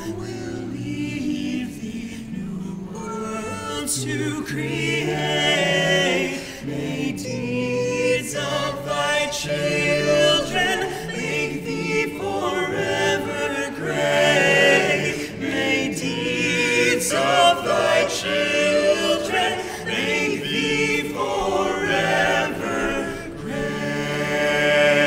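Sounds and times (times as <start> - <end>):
male choir singing hymn: 0.0 - 25.0.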